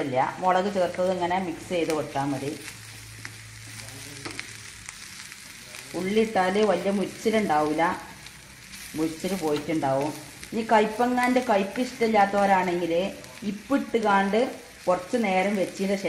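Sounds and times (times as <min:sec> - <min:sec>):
vegetables sizzling in hot oil: 0:00.0 - 0:16.0.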